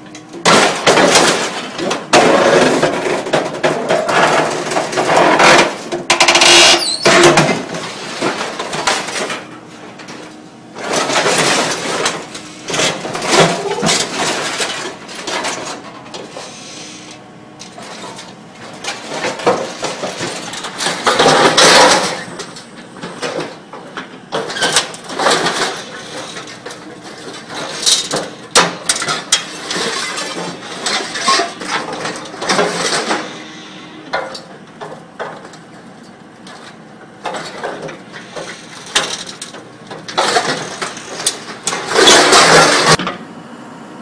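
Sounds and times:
scrap metal clanking and crunching: 0.0s - 43.2s
excavator engine under load: 0.0s - 44.0s.

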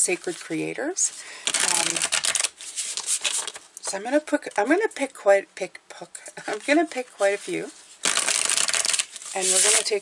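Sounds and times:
cards rustling: 1.4s - 3.7s, 6.4s - 10.0s
cards riffle-shuffled: 1.5s - 3.6s, 6.5s - 10.0s.

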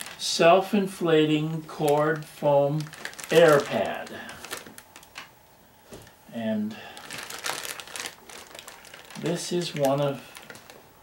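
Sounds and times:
bag crinkling and rustling: 0.0s - 0.3s, 1.6s - 5.3s, 6.8s - 11.0s.

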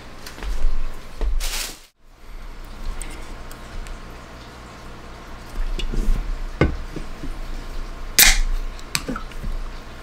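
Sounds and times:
drink can opening crack: 8.2s - 8.5s.

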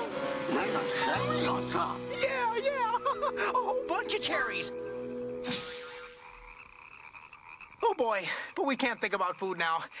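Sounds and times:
faint frog croaking: 2.9s - 10.0s.

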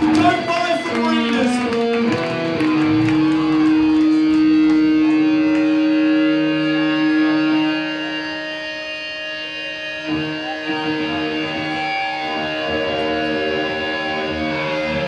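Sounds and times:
electric guitar ringing note: 1.5s - 15.0s
guitar chord struck: 1.6s - 15.0s.

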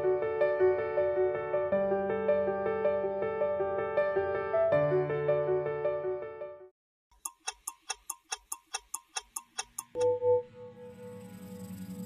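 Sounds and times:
clock-like ticking: 7.1s - 10.2s.

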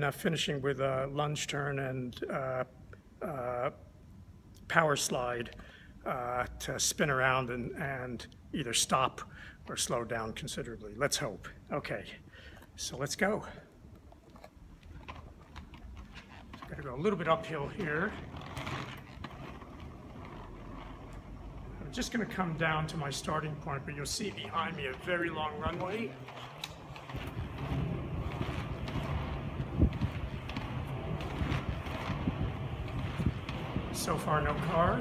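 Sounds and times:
inline skates rolling on asphalt: 4.7s - 35.0s
light clicks of skate wheels: 13.5s - 35.0s
wind on microphone: 27.0s - 35.0s.

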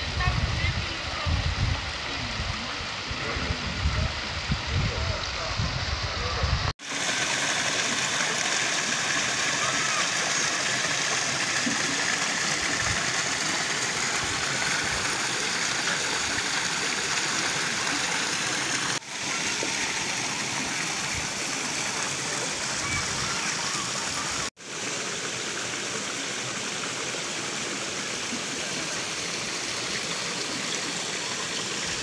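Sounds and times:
fountain water splashing into pond: 0.8s - 32.0s.

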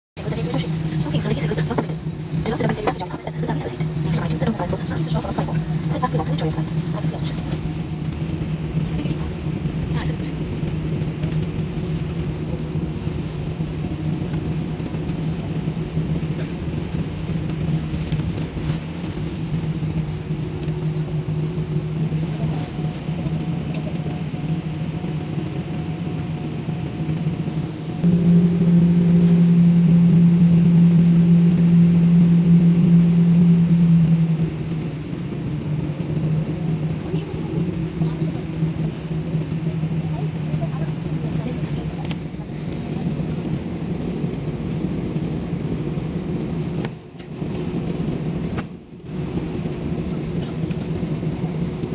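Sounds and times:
jet engine hum in cabin: 0.2s - 51.9s.

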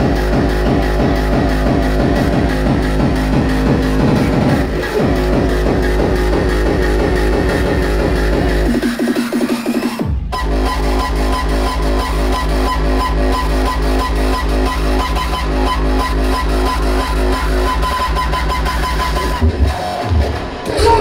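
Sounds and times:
loud dubstep with heavy bass: 0.0s - 21.0s.

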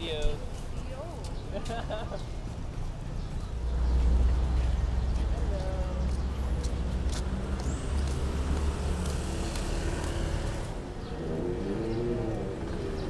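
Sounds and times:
vehicle engine rumbling past: 3.6s - 13.0s.

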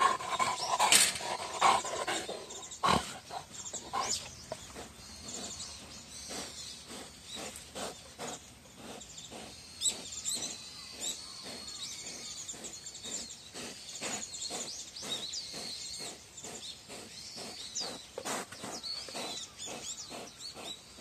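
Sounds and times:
small birds chirping: 0.0s - 21.0s
wild boar grunting: 0.0s - 21.0s.

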